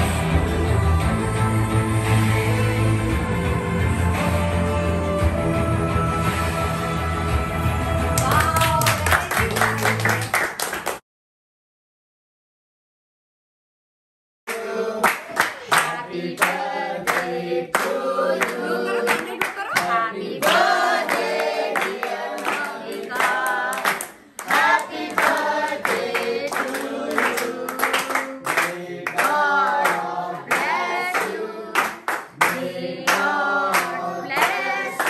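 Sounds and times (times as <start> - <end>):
group singing birthday song: 0.0 - 8.2, 14.5 - 35.0
people clapping along: 8.1 - 11.0, 14.5 - 35.0.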